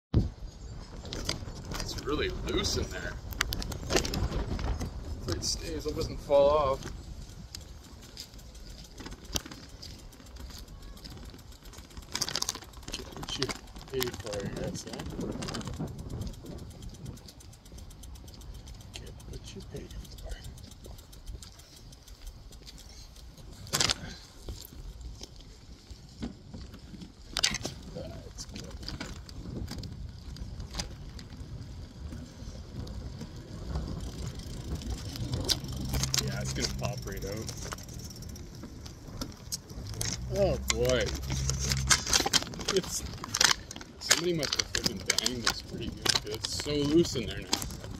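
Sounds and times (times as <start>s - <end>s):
steady low hum: 0.2s - 47.9s
low rumble: 27.4s - 43.8s.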